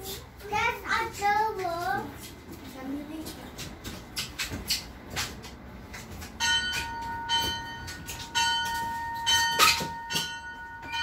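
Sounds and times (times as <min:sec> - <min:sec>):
metal bell ringing: 0:06.4 - 0:11.0.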